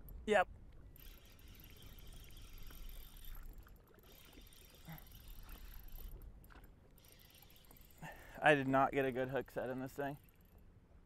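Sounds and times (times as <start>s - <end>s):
water lapping at boat hull: 0.6s - 10.6s
fishing reel clicks: 0.9s - 8.1s.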